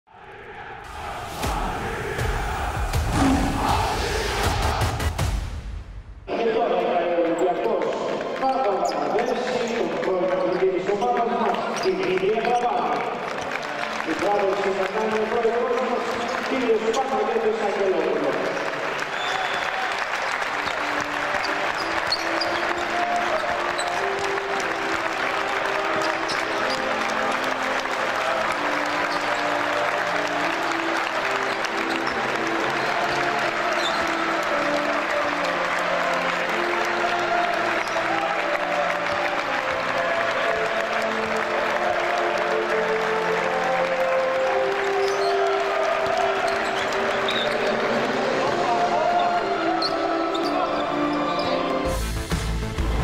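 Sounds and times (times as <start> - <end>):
crowd applauding: 6.4 - 53.0.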